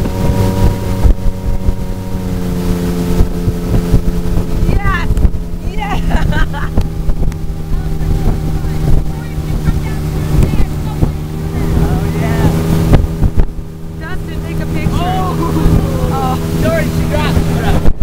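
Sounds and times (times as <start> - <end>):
churning wake water: 0.0 - 18.0
motorboat engine drone: 0.0 - 18.0
wind on microphone: 0.0 - 18.0.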